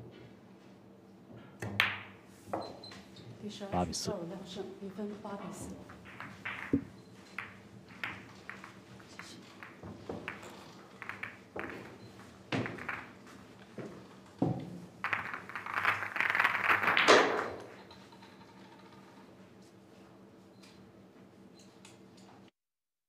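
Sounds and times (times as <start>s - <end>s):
billiard balls clicking: 5.6s - 19.2s
billiard balls rattling in rack: 5.7s - 19.4s.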